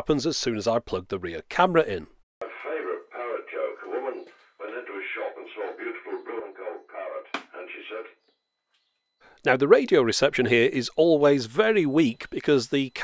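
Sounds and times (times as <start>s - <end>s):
speech on car radio: 0.0s - 8.2s, 9.5s - 13.0s.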